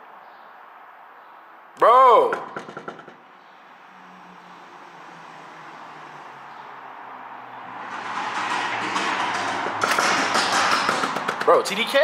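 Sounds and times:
knocking on a door: 2.4s - 3.2s, 8.0s - 11.5s.

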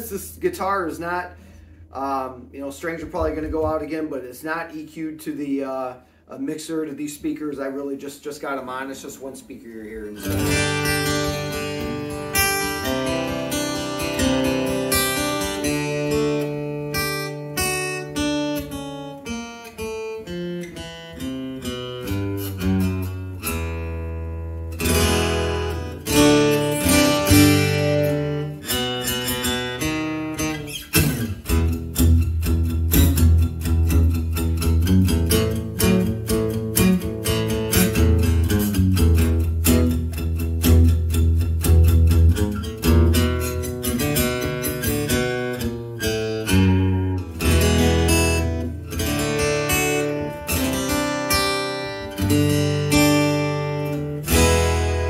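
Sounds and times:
acoustic guitar strummed chords: 10.2s - 55.0s.

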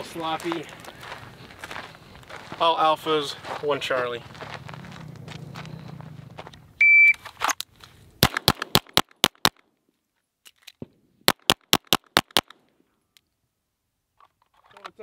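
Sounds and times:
shot timer beep: 6.8s - 7.2s
pistol shots: 8.2s - 9.6s, 11.3s - 12.6s.

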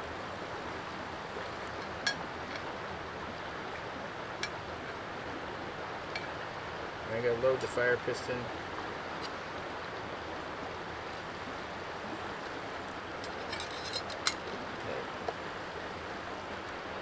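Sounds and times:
steady outdoor hiss: 0.0s - 17.0s.

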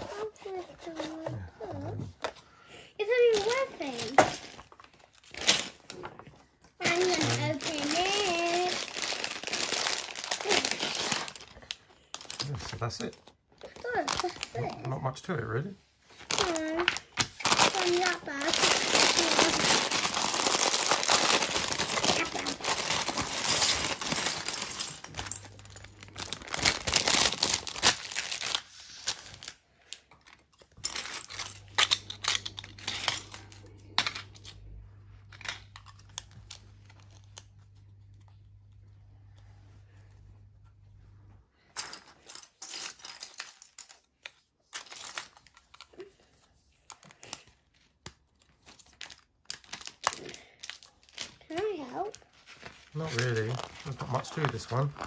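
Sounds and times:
plastic bag crinkling: 6.8s - 15.0s, 16.1s - 38.3s, 48.6s - 55.0s
plastic pieces clattering on wood: 16.2s - 34.6s, 41.7s - 46.0s.

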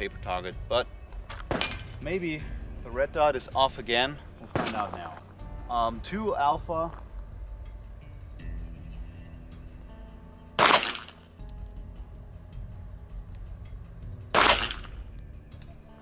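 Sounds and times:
pistol shots: 1.4s - 1.9s, 4.5s - 4.9s, 10.6s - 11.2s, 14.3s - 15.0s.

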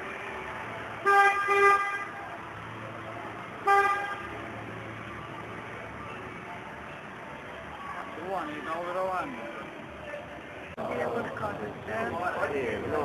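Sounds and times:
horn honking: 1.0s - 2.2s, 3.6s - 4.4s.

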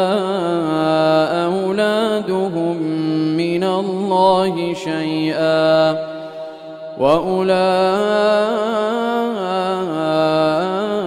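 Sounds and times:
man chanting melodic recitation: 0.0s - 11.0s.

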